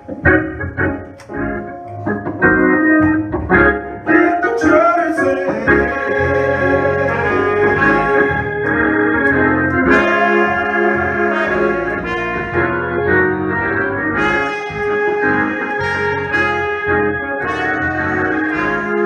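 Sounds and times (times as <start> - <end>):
instrumental accompaniment with bass: 0.0 - 19.0
trumpet playing a melody: 5.7 - 19.0.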